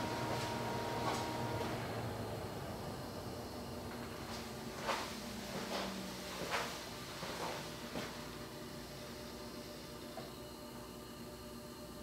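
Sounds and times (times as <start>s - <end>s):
electric car charging hum: 0.0s - 12.0s.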